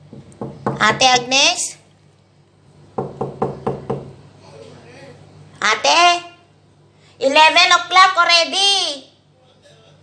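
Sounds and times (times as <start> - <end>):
knocks on a wooden door: 0.0 - 1.1, 3.0 - 4.2.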